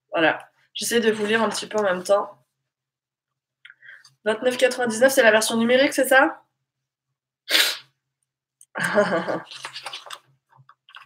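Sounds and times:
woman's sharp burst of breath: 0:07.5 - 0:07.9
woman laughing: 0:08.8 - 0:09.6.

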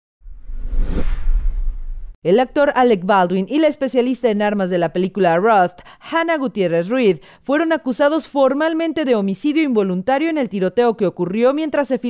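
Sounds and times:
deep bass rumble: 0:00.2 - 0:02.2.

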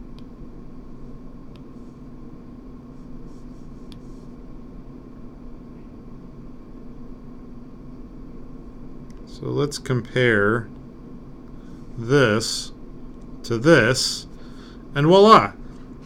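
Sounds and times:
electrical hum and hiss: 0:00.0 - 0:16.0.

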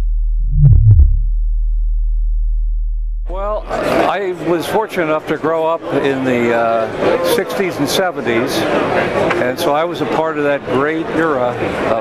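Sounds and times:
synthesized falling tones with blips: 0:00.0 - 0:03.0
steady low drone: 0:00.0 - 0:03.8.

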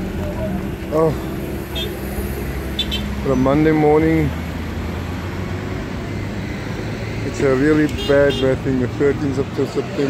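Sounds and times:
road traffic engine hum: 0:00.0 - 0:10.0.

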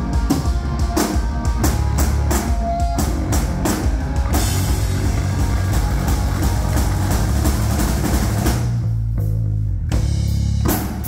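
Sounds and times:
live rock band playing: 0:00.0 - 0:11.0.

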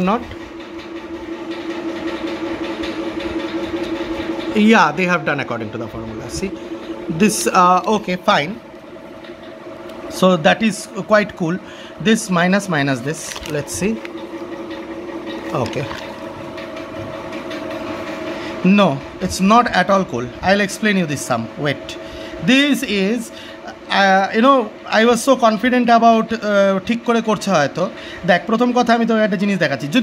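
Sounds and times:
machine humming: 0:00.0 - 0:30.0.

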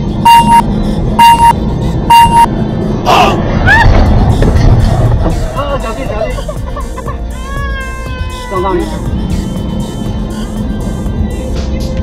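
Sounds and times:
road and engine rumble in car: 0:00.0 - 0:12.0
electronic warning beeps: 0:00.2 - 0:02.5.

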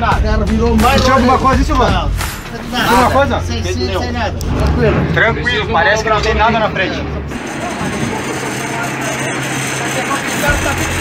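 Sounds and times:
vehicle running: 0:00.4 - 0:11.0.

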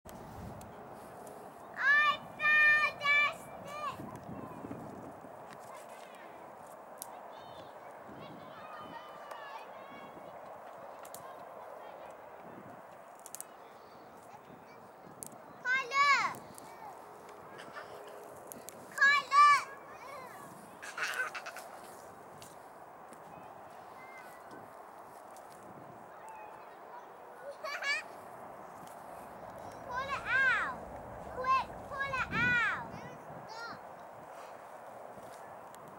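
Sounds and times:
outdoor background noise: 0:00.1 - 0:35.9
distant children's voices: 0:00.3 - 0:35.9.

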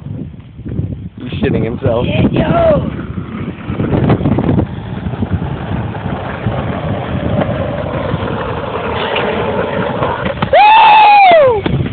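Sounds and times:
skateboard wheels rolling on asphalt: 0:00.0 - 0:11.9.

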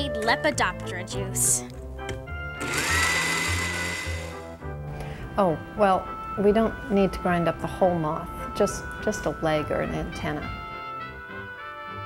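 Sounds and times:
blender motor whining: 0:02.5 - 0:04.6.

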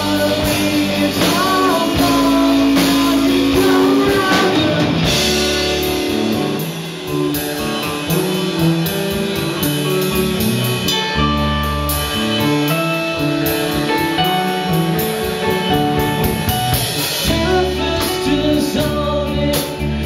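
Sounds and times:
person singing lead vocal: 0:00.0 - 0:06.0, 0:17.2 - 0:20.0
live rock band playing: 0:00.0 - 0:20.0.

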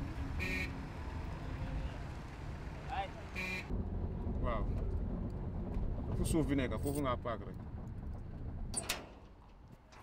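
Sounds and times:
steady low rumble: 0:03.7 - 0:10.0.

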